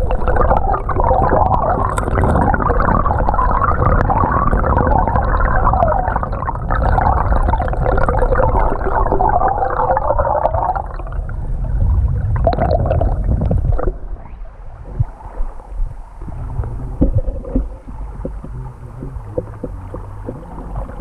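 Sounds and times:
small clicks underwater: 0:00.0 - 0:11.1, 0:16.2 - 0:21.0
creek water gurgling underwater: 0:00.0 - 0:21.0.

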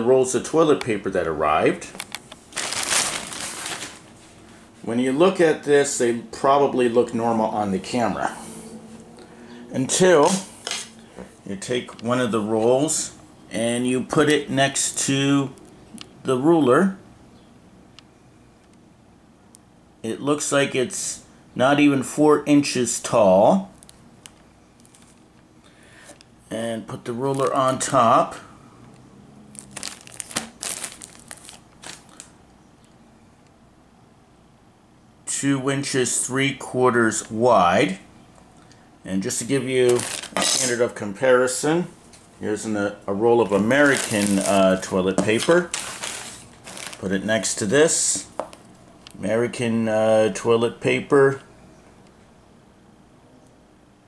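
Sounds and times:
plastic packaging crinkling: 0:01.9 - 0:04.4, 0:23.8 - 0:25.2, 0:29.5 - 0:32.4, 0:39.8 - 0:40.8, 0:43.4 - 0:47.7.

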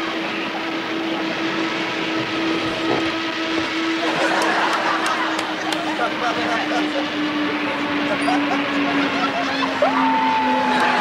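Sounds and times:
propeller plane drone in cockpit: 0:00.0 - 0:11.0.

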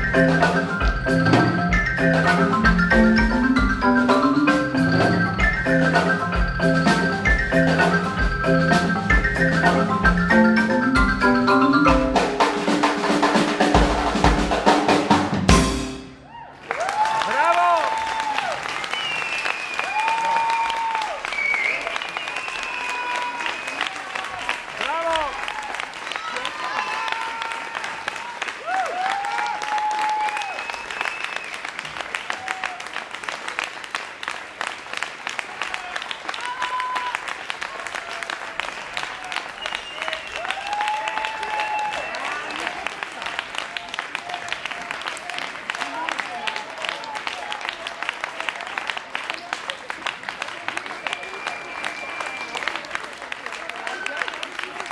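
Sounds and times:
drum stroke: 0:00.0 - 0:16.3
audience applauding: 0:00.0 - 0:54.9
cheering shouts: 0:16.2 - 0:31.2, 0:32.2 - 0:33.0, 0:35.4 - 0:54.9.

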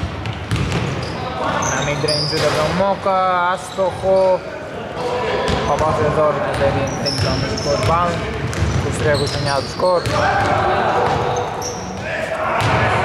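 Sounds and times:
basketball bouncing: 0:00.0 - 0:01.0, 0:05.5 - 0:11.3
sneaker squeaks: 0:00.2 - 0:02.9, 0:03.6 - 0:04.4, 0:05.4 - 0:12.8.

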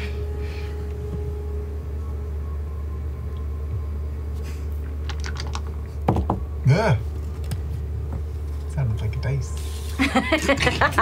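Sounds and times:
dark ambient drone music: 0:00.0 - 0:11.0.

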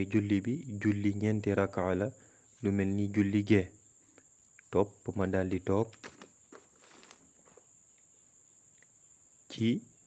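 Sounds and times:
faint high-pitched hiss: 0:00.0 - 0:10.0.

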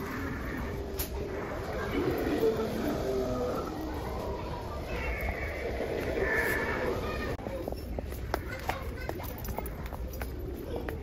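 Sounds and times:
recorded groaning voice: 0:00.0 - 0:04.4.

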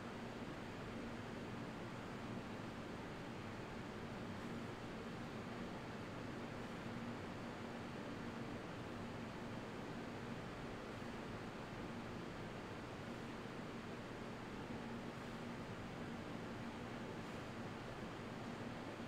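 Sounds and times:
fan whooshing hiss: 0:00.0 - 0:19.0.

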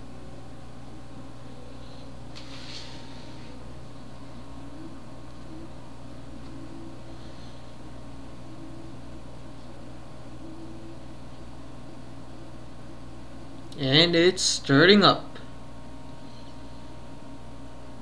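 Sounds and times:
equipment low hum: 0:00.0 - 0:18.0
faint hiss: 0:02.0 - 0:03.7.

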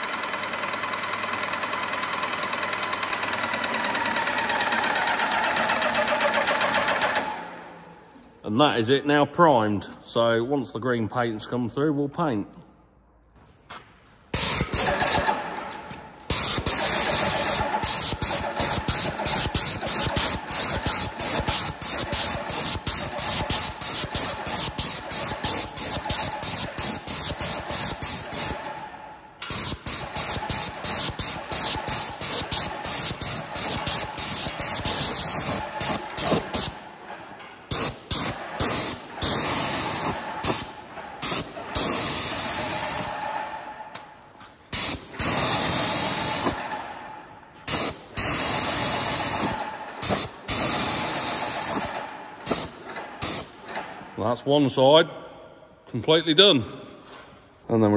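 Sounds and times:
paint sprayer hissing: 0:04.0 - 0:08.0, 0:14.3 - 0:28.8, 0:29.4 - 0:37.0, 0:37.7 - 0:43.2, 0:44.7 - 0:46.8, 0:47.6 - 0:53.7.

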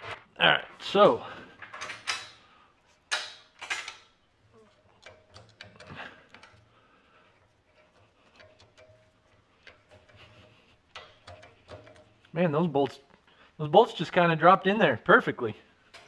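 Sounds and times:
metallic clinks of steel bolts: 0:01.6 - 0:02.5, 0:03.1 - 0:04.2.

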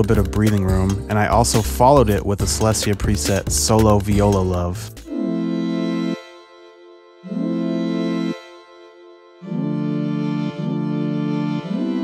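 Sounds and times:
held synth chords: 0:04.9 - 0:12.0
soft sustained synth layer: 0:05.1 - 0:12.0.

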